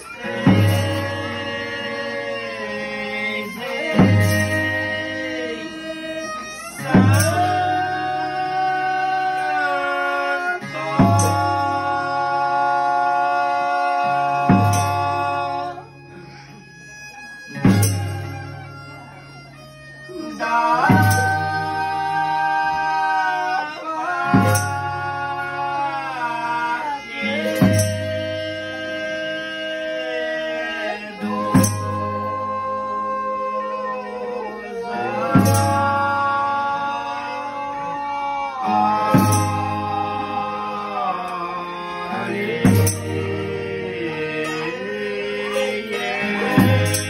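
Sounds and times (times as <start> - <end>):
men singing long layered notes: 0.0 - 16.5, 20.0 - 47.0
plucked guitar: 0.0 - 47.0.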